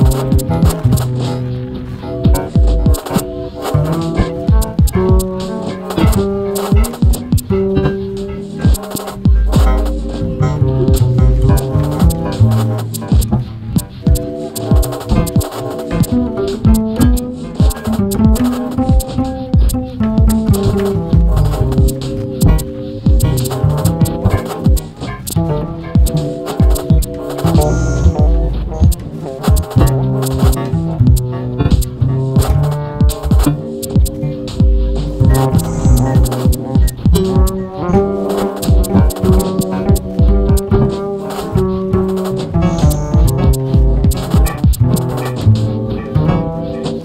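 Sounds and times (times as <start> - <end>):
sustained synth tones: 0.0 - 47.0
electronic pulse of low thumps: 8.6 - 38.0, 38.6 - 40.8, 42.0 - 46.4
upright bass plucked: 9.4 - 13.4, 27.5 - 29.1.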